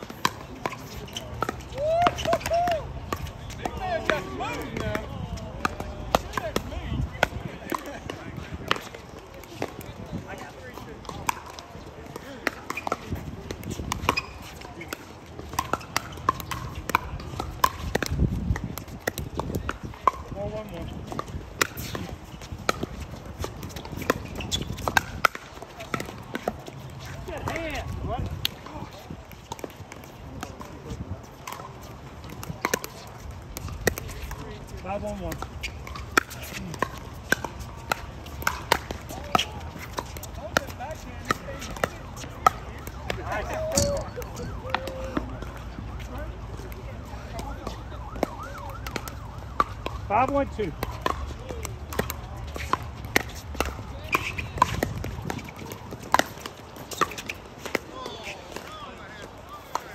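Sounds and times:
ball bouncing: 0.0 - 59.9.

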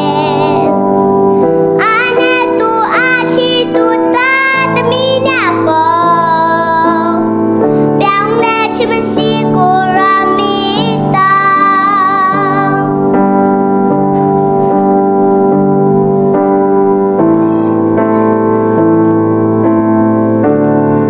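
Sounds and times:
girl singing: 0.0 - 13.2
keyboard chords: 0.0 - 21.0.

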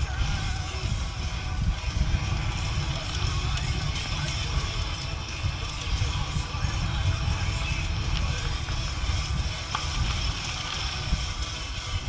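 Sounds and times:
mountain bike rattling on dirt: 0.0 - 12.0
wind on microphone: 0.0 - 12.0.

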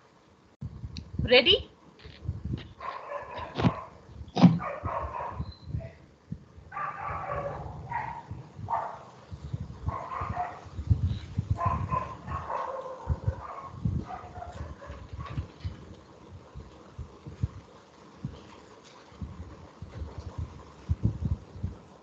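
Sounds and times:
dog barking: 2.8 - 4.0, 4.6 - 5.4, 6.7 - 9.2, 9.9 - 10.7, 11.6 - 15.4.

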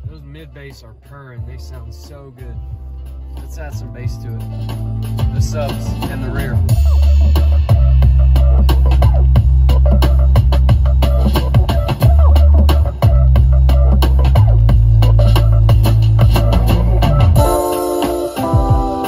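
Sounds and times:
keyboard chords: 0.0 - 19.0
song with heavy bass and drums: 0.0 - 19.0.

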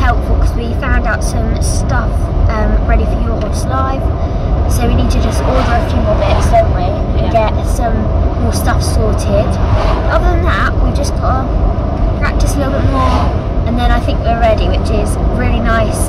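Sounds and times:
girl talking: 0.0 - 4.1, 4.7 - 11.6, 12.2 - 16.0
car road and engine rumble: 0.0 - 16.0.

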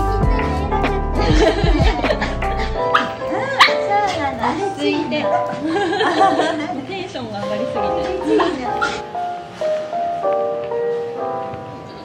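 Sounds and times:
background music: 0.0 - 12.0
dog whining and yipping: 2.9 - 4.2, 8.8 - 9.1.

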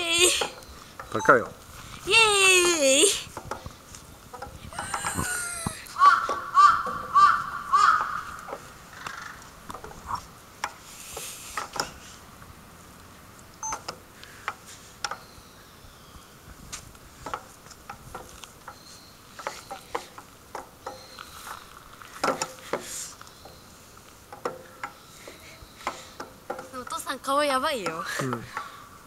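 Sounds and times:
swing chains clinking and creaking: 4.3 - 5.8
swing squeak: 4.7 - 5.8.

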